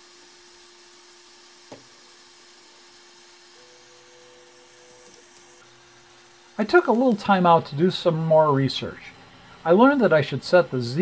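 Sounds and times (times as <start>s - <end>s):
printer low hum: 0.0s - 11.0s
printer motor whine: 0.0s - 11.0s.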